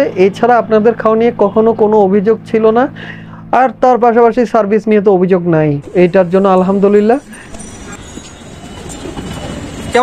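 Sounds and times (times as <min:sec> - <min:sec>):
rumble of passing vehicles: 0:05.8 - 0:10.0.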